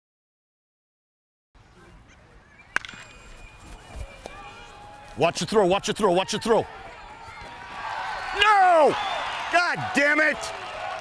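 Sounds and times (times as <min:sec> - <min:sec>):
ballpark background noise: 0:01.6 - 0:11.0
bat hitting baseball: 0:02.7 - 0:03.2.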